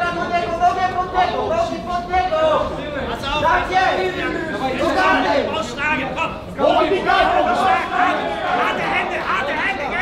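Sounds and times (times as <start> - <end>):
voices talking and shouting: 0.0 - 10.0.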